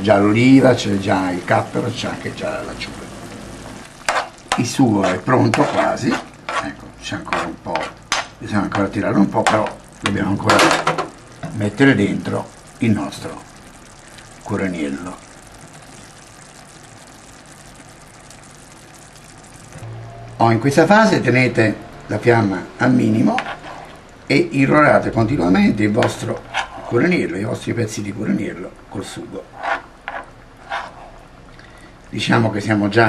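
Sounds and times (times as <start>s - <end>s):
sauce simmering in a frying pan: 0.0s - 33.0s.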